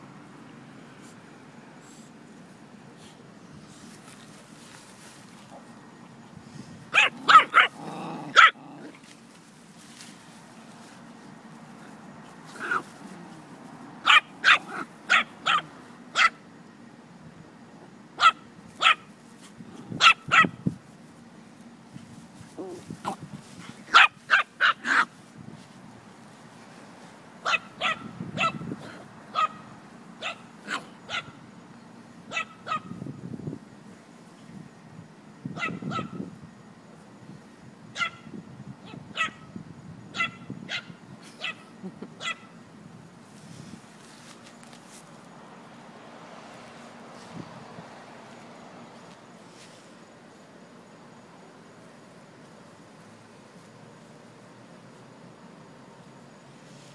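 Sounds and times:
small dog yapping: 0:06.9 - 0:09.0, 0:12.5 - 0:12.9, 0:14.0 - 0:16.4, 0:18.2 - 0:19.1, 0:20.0 - 0:20.6, 0:23.8 - 0:25.1, 0:27.4 - 0:28.6, 0:29.3 - 0:29.6, 0:30.2 - 0:31.4, 0:32.3 - 0:32.9, 0:35.6 - 0:36.2, 0:38.0 - 0:38.2, 0:38.8 - 0:39.4, 0:40.1 - 0:41.6, 0:42.2 - 0:42.5.

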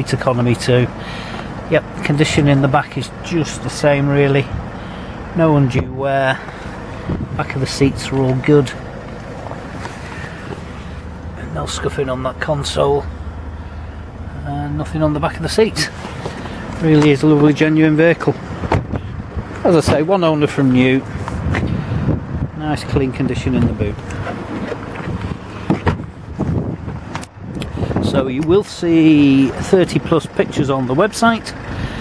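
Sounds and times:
low rumble inside car cabin: 0:00.0 - 0:32.0
wind buffeting microphone: 0:07.0 - 0:08.1, 0:18.5 - 0:19.6, 0:21.0 - 0:28.7.

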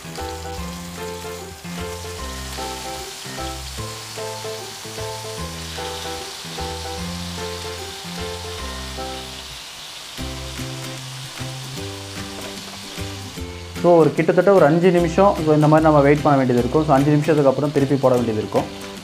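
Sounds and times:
chicken sizzling in hot oil: 0:00.0 - 0:19.0
background music with bass line: 0:10.2 - 0:19.0.

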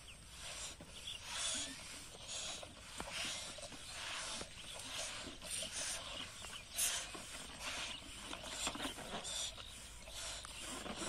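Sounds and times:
breathy hisses blowing up balloons: 0:00.0 - 0:11.0.

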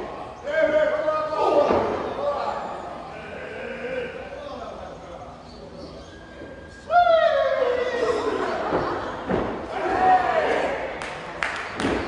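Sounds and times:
loud falling shout: 0:09.7 - 0:10.9.

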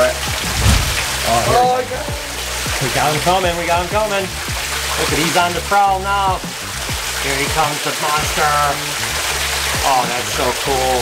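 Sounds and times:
waterfalls splashing into pond: 0:00.0 - 0:11.0
low thump: 0:00.4 - 0:01.7.

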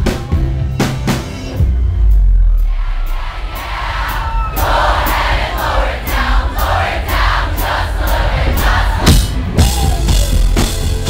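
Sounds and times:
crowd cheering and shouting: 0:00.0 - 0:11.0
steady beat: 0:00.0 - 0:11.0.

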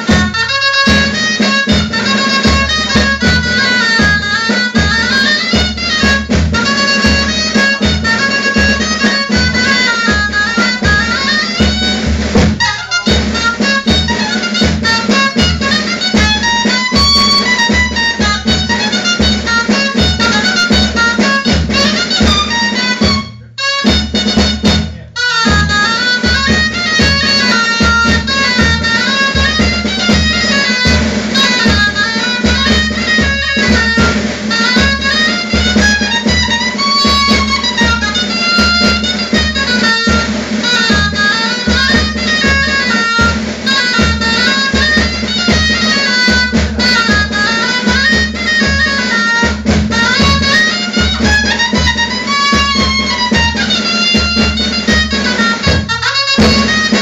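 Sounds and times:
shawm playing folk melody: 0:00.0 - 0:57.0
snare drum beating: 0:00.0 - 0:57.0.

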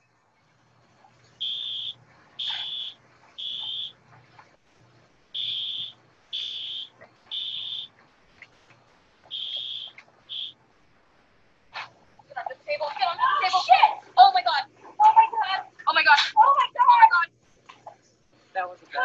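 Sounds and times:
fire alarm beeping: 0:01.4 - 0:04.0, 0:05.4 - 0:07.9, 0:09.3 - 0:10.6.

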